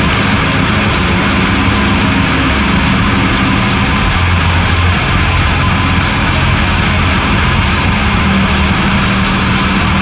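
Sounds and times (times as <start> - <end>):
heavy distorted rock drone: 0.0 - 10.0.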